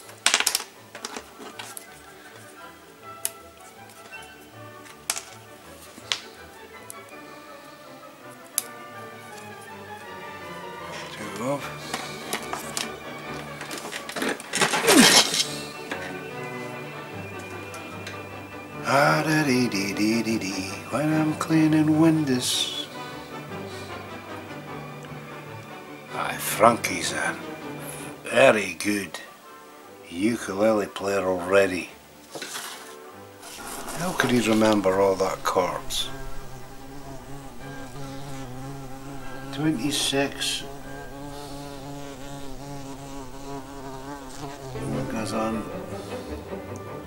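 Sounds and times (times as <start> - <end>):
background music: 0.0 - 47.0
plywood model parts clattering: 0.1 - 1.8, 11.8 - 16.2, 32.3 - 33.7.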